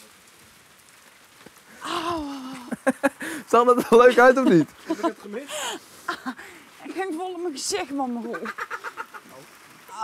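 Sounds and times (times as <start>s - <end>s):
outdoor background hiss: 0.0s - 10.0s
person crying out: 1.8s - 2.9s.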